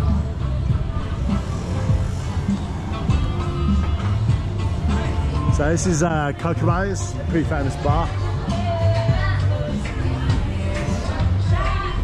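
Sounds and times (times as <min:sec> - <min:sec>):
music with heavy bass: 0:00.0 - 0:12.0.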